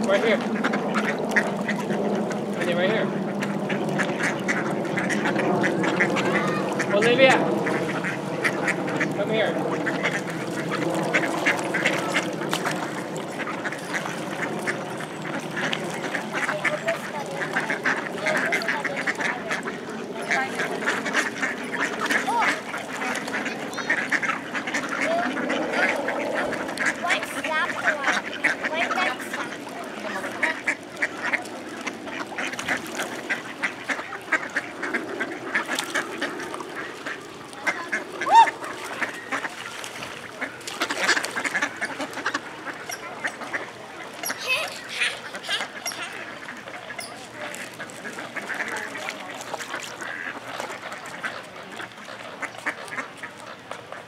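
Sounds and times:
ducks quacking: 0:00.0 - 0:54.0.

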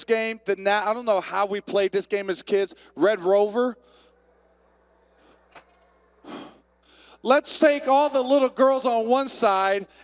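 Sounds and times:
breath into microphone: 0:03.8 - 0:04.3, 0:06.2 - 0:07.2.

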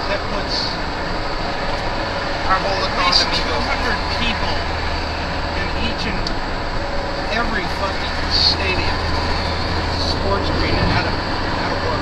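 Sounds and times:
road and wind noise inside car: 0:00.0 - 0:12.0.

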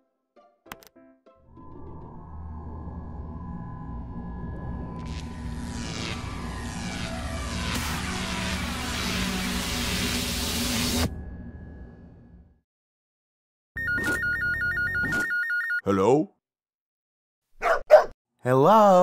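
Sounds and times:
low electronic rumble and hum: 0:01.6 - 0:12.6.

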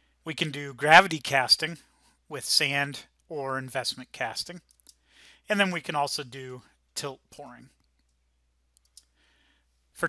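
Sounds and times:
faint clicks: 0:04.6 - 0:05.0, 0:07.7 - 0:09.2.

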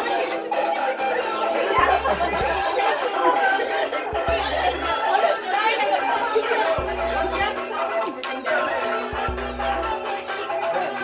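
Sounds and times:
people chattering: 0:00.0 - 0:11.0
music with bass line: 0:01.0 - 0:03.1, 0:04.0 - 0:05.2, 0:06.7 - 0:11.0.

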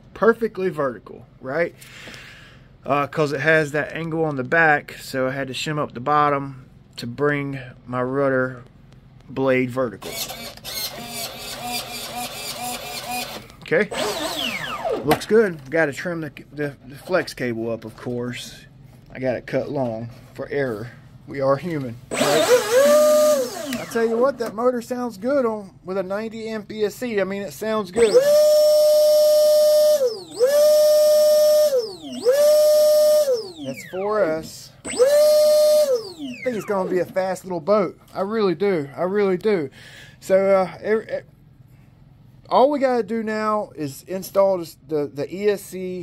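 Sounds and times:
servo whirring: 0:10.0 - 0:15.2, 0:22.1 - 0:24.4, 0:28.0 - 0:37.0
electric motor high whine: 0:10.2 - 0:15.1, 0:22.1 - 0:24.3, 0:28.0 - 0:36.9.

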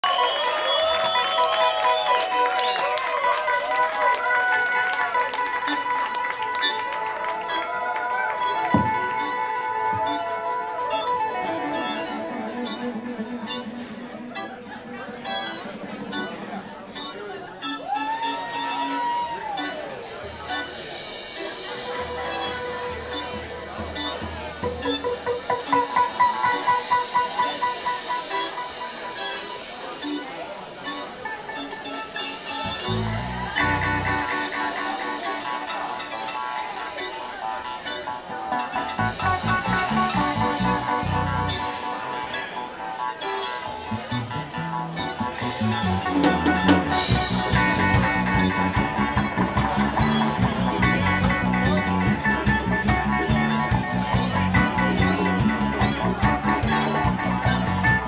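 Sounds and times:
funk band playing: 0:00.0 - 0:58.0
keyboards sustained notes: 0:00.0 - 0:58.0
voices: 0:00.0 - 0:58.0
electric guitar: 0:00.1 - 0:58.0.

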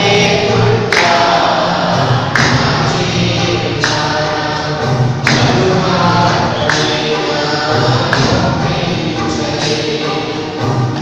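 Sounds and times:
congregation singing: 0:00.0 - 0:11.0
sharp percussive beat: 0:00.0 - 0:11.0.

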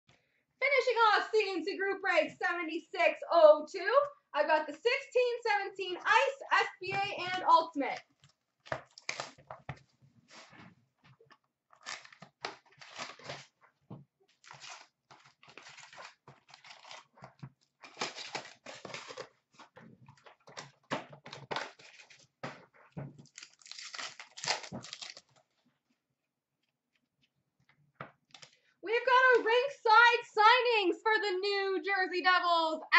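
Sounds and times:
cardboard and wrappers tearing: 0:08.6 - 0:09.6, 0:11.7 - 0:13.6, 0:14.3 - 0:22.3, 0:23.2 - 0:25.5.

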